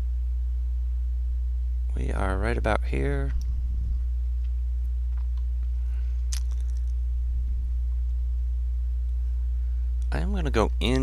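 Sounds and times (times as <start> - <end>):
low electrical hum: 0.0 - 11.0
sharp click: 6.3 - 7.0.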